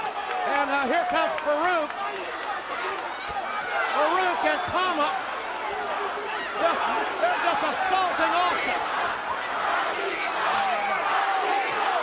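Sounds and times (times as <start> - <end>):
crowd yelling and shouting: 0.0 - 12.0.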